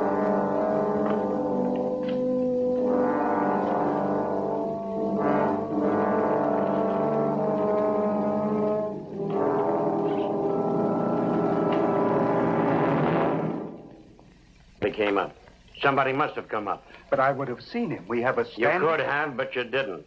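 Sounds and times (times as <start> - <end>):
orchestral brass chords: 0.0 - 14.2.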